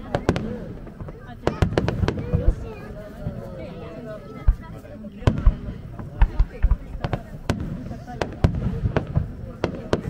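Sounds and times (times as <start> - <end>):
firework shells bursting: 5.2 - 10.0.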